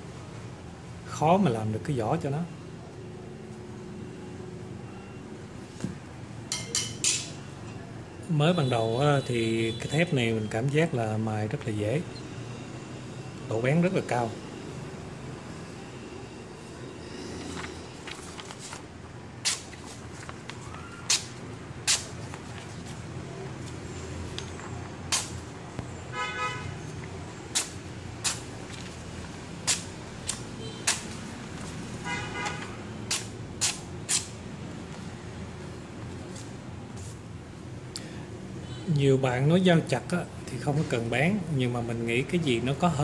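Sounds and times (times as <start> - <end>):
knife slicing paper: 19.4 - 22.4.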